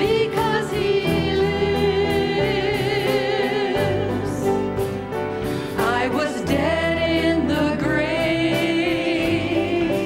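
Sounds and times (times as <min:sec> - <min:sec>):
women singing together: 0:00.0 - 0:04.6, 0:05.8 - 0:10.0
band accompaniment: 0:00.0 - 0:10.0
drums keeping a steady beat: 0:00.0 - 0:10.0.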